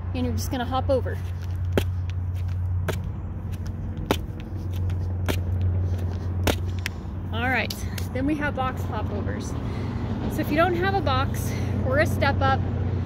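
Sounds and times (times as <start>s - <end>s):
steady low rumble: 0.0s - 13.0s
feet landing thuds: 1.2s - 6.9s.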